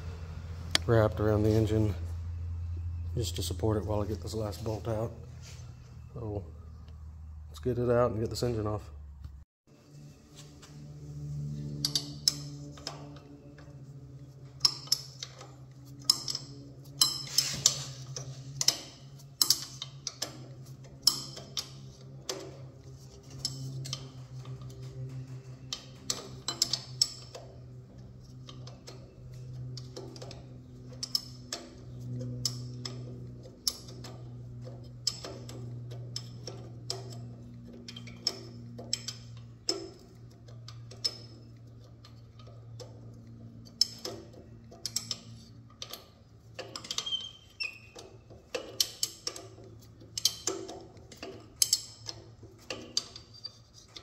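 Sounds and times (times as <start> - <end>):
steady low hum: 0.0 - 54.0
ratchet wrench clicking: 14.6 - 22.6, 23.2 - 54.0.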